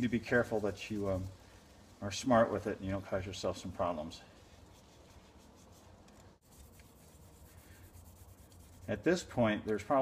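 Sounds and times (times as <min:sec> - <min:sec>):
sanding with wet sandpaper: 0:00.0 - 0:09.4.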